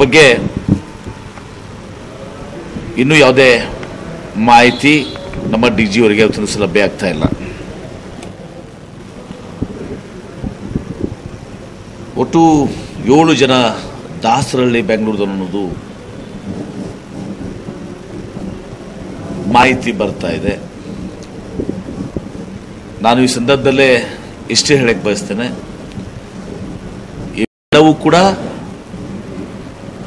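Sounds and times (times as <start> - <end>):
low rumbling crowd noise: 0.0 - 27.4
steady hiss: 0.0 - 30.0.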